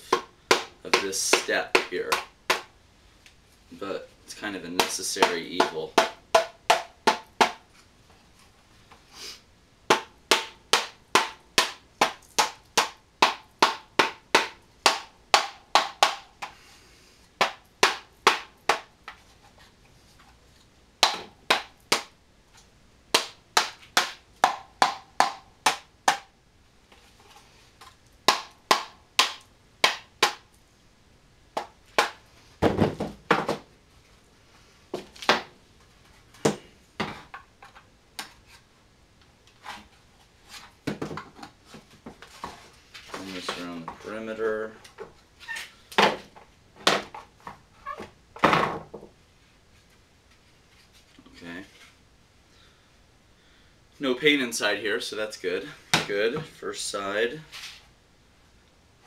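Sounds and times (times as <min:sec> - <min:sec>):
rubber mallet knocking on mold: 0:04.8 - 0:07.6, 0:09.9 - 0:16.2, 0:21.0 - 0:22.1, 0:23.1 - 0:26.3.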